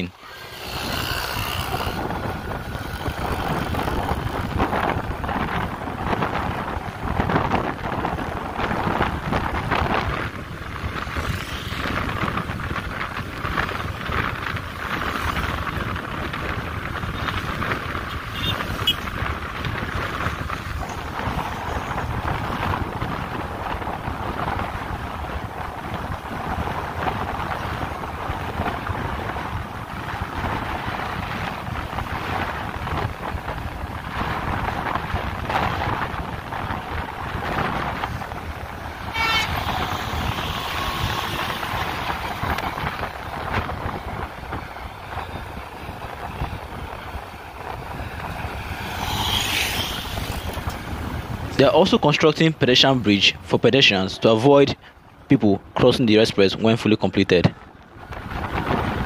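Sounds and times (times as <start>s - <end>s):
road and engine noise: 0.0s - 59.0s
wind rush: 0.0s - 59.0s
vehicle horn: 18.2s - 19.0s, 39.0s - 42.4s.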